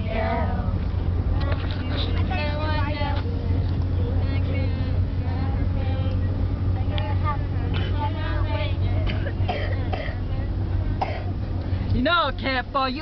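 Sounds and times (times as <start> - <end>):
young women singing: 0.0 - 11.2
vehicle engine and road noise: 0.0 - 13.0
young women talking: 11.9 - 13.0.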